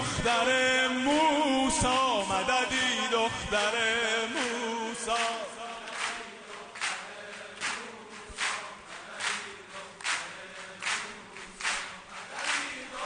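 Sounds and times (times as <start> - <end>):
crowd clapping in rhythm: 0.0 - 13.0
faint chanting voices: 0.0 - 13.0.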